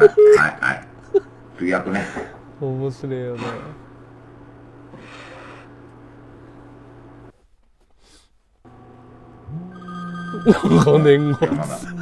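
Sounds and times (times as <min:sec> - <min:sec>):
steady low tone: 0:08.7 - 0:12.0.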